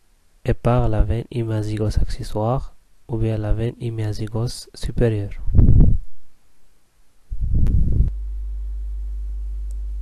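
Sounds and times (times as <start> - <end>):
steady low-pitched hum: 5.2 - 6.4, 7.3 - 10.0.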